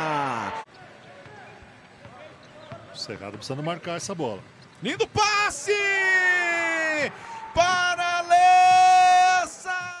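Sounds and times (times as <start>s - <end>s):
sports commentator shouting: 4.9s - 10.0s.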